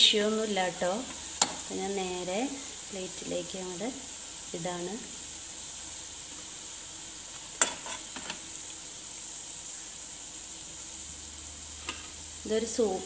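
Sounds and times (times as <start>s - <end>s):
oil sizzling in a frying pan: 0.0s - 13.0s.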